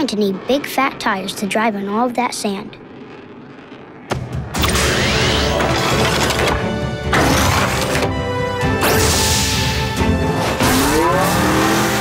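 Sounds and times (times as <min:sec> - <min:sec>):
cartoon background music: 0:04.6 - 0:12.0.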